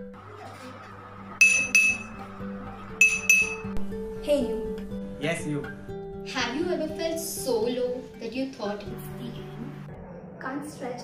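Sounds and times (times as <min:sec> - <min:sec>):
soft background music: 0:00.0 - 0:11.0
spoon clinking on glass: 0:01.4 - 0:02.1, 0:03.0 - 0:03.7.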